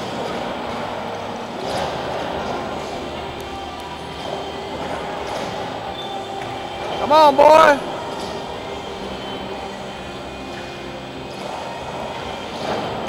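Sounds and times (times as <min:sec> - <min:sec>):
background music: 0:00.0 - 0:13.0
indistinct voices: 0:00.0 - 0:13.0
steady room din: 0:00.0 - 0:13.0.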